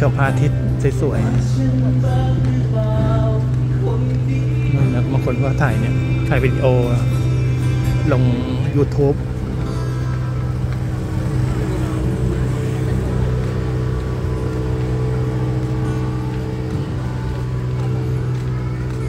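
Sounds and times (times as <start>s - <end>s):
music playing: 0.0s - 19.0s
low hum: 0.5s - 19.0s
faint chatter of people: 1.0s - 19.0s.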